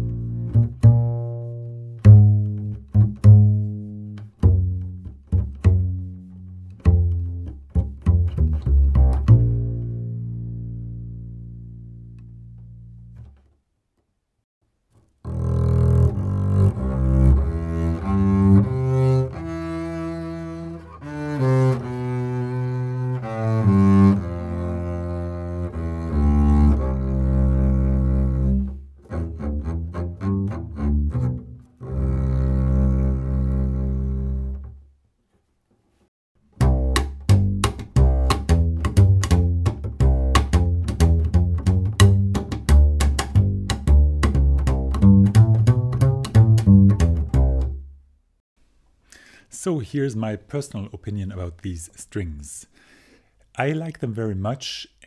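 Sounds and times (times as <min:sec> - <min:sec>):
double bass bowed: 0:00.0 - 0:13.4, 0:15.2 - 0:34.9, 0:36.5 - 0:48.0
double bass plucked: 0:00.0 - 0:13.5, 0:15.2 - 0:34.9, 0:36.4 - 0:48.1.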